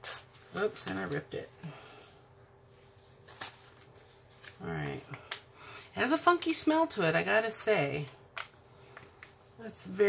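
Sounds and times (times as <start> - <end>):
canvas under plastic film handled: 0.0 - 5.1.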